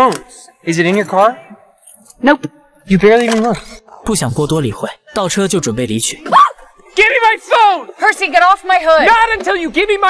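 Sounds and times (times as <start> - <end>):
man speaking: 0.0 - 6.3
rising vocal cry: 6.2 - 6.9.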